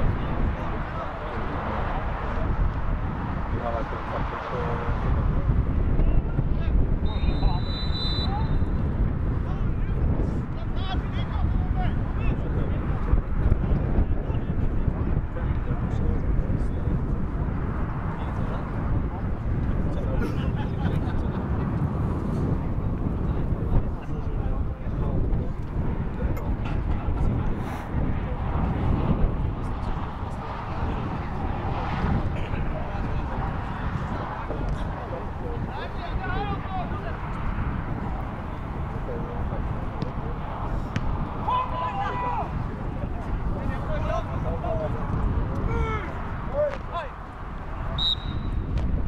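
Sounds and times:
wind rumbling on microphone: 0:00.0 - 0:49.0
distant players calling: 0:39.6 - 0:48.6.

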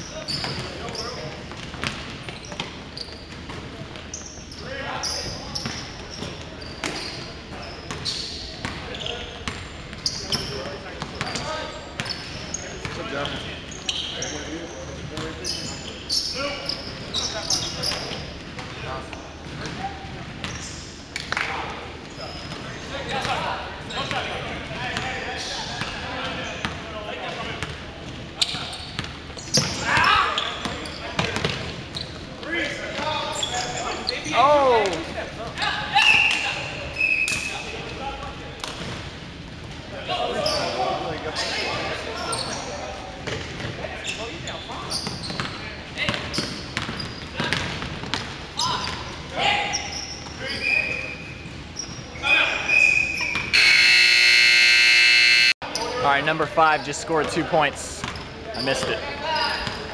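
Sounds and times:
players calling out: 0:52.1 - 0:59.0.

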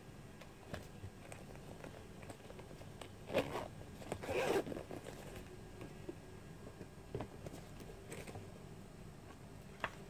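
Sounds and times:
bag being handled: 0:00.7 - 0:05.5
zip being pulled: 0:03.3 - 0:04.9.

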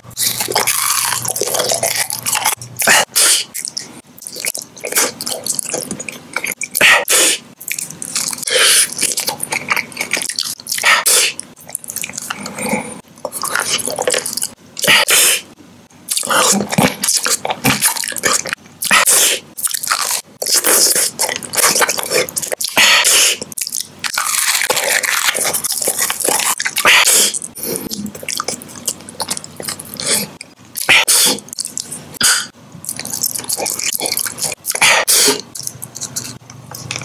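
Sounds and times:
crunching and chewing candy: 0:00.0 - 0:15.5, 0:16.1 - 0:37.0.

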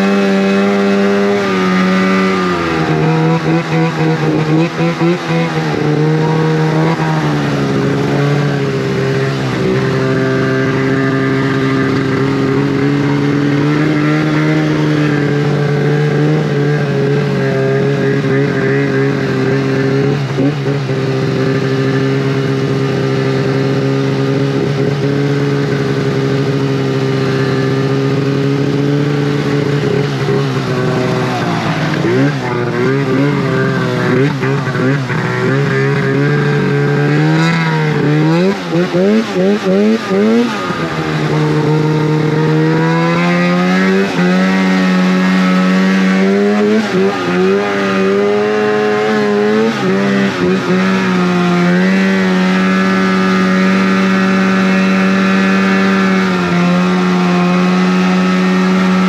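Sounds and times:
snowmobile engine revving: 0:00.0 - 0:59.0.

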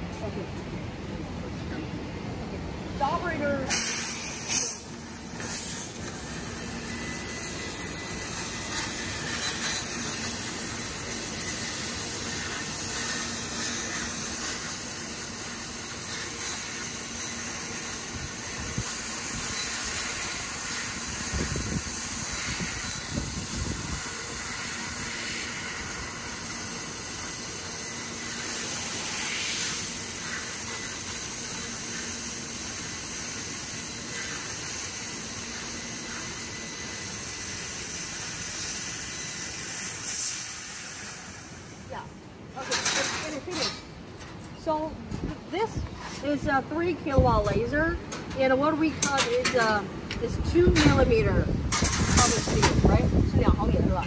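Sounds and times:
laser cutter hissing: 0:03.6 - 0:42.2.

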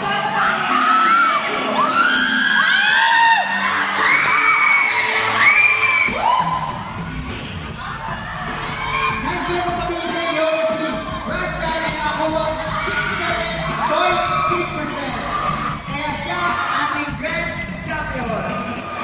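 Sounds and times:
crowd cheering and screaming: 0:00.0 - 0:19.0
loud music with bass: 0:00.0 - 0:19.0.

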